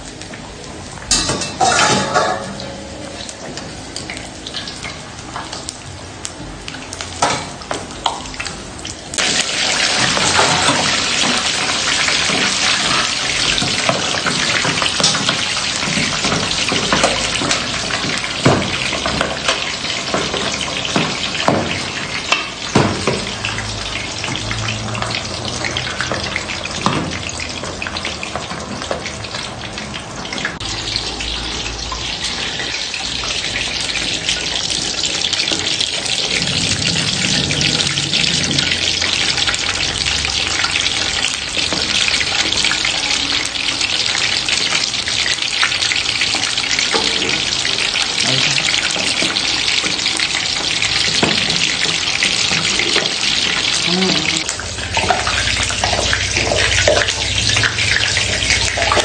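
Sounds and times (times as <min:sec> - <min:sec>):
meat sizzling in hot oil: 0:00.0 - 0:59.0.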